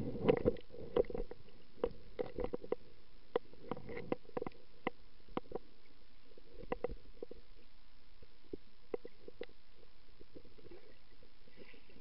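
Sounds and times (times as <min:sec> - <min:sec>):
sharp underwater clicks and pops: 0:00.1 - 0:05.7, 0:06.5 - 0:07.4.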